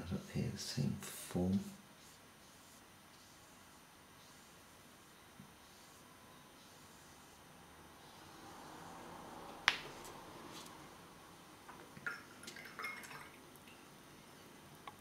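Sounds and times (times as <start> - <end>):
faint brush swish: 5.4 - 11.0.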